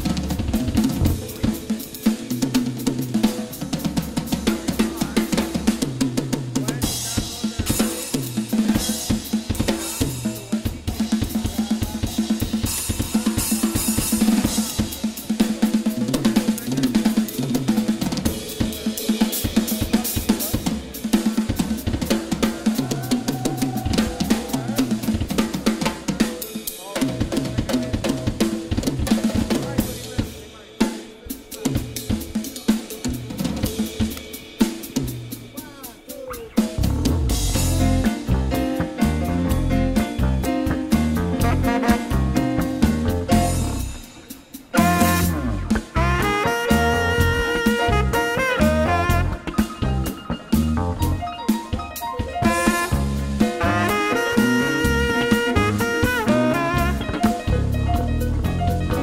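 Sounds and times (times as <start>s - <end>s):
jazz drum kit groove: 0.0s - 59.0s.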